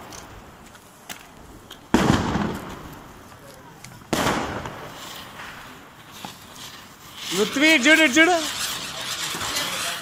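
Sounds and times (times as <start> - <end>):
firecracker bangs: 1.9 - 3.1, 4.1 - 6.4.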